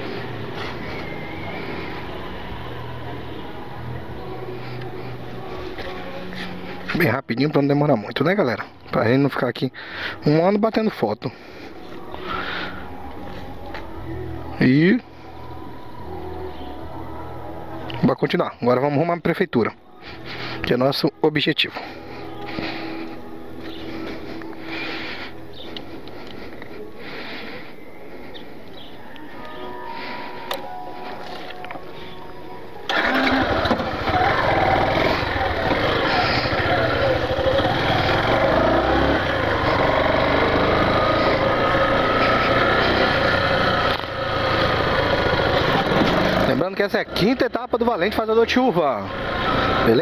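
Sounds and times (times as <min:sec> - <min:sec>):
motorcycle engine running: 0:32.9 - 0:48.0, 0:48.8 - 0:50.0.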